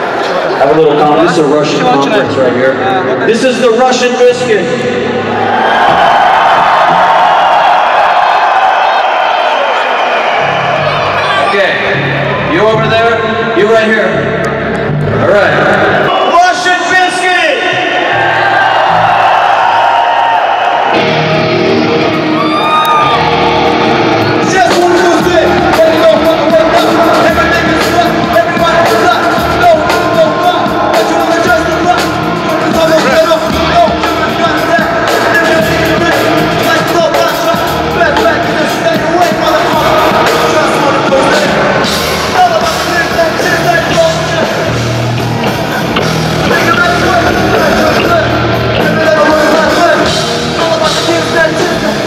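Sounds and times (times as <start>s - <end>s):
live rock music with electric guitar: 20.7s - 52.0s.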